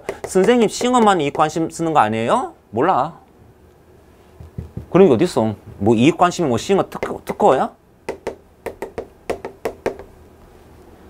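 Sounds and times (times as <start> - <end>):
chalk tapping on blackboard: 0.0 - 1.5, 7.0 - 7.4, 8.1 - 10.1.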